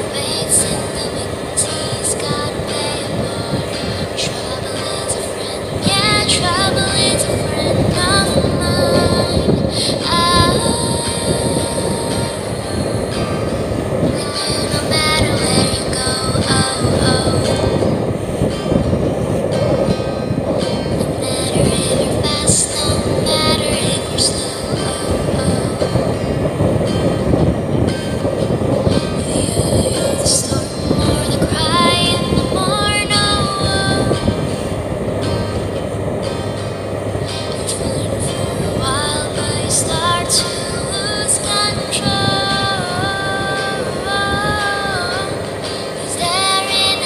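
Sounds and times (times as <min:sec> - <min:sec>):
motorboat engine running: 0:00.0 - 0:47.0
music with singing: 0:00.0 - 0:47.0
wind and water rushing: 0:00.0 - 0:47.0.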